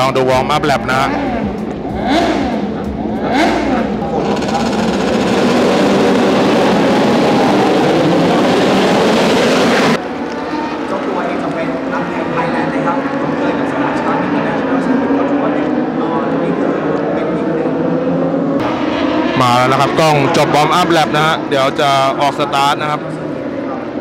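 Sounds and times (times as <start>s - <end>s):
motorcycle engines revving: 0.0s - 24.0s.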